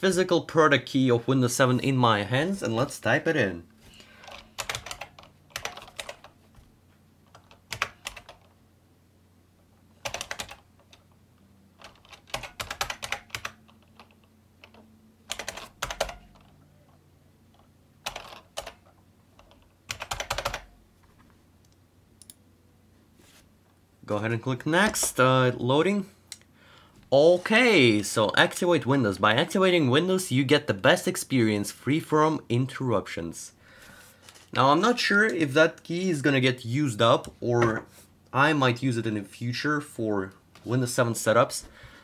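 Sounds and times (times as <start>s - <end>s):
computer keyboard typing: 4.2s - 6.4s, 7.3s - 8.5s, 10.0s - 11.0s, 11.8s - 16.5s, 18.0s - 20.7s.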